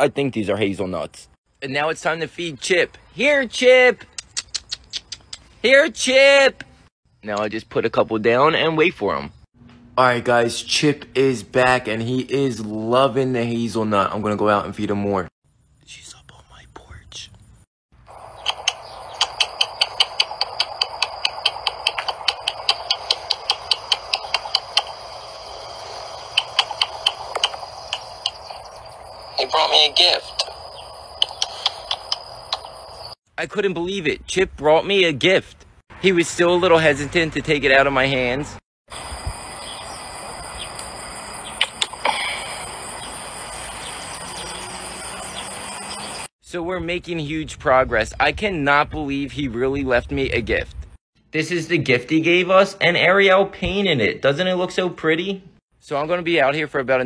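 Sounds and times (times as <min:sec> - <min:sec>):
high-pitched insect drone: 0:18.1 - 0:33.2, 0:38.9 - 0:46.3
rapid sharp clicks: 0:18.4 - 0:25.1, 0:26.2 - 0:28.5.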